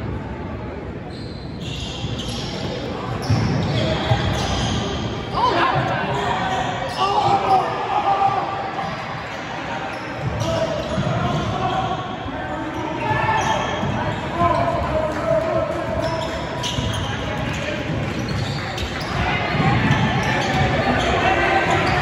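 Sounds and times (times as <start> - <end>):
voices echoing: 0.1 - 22.0.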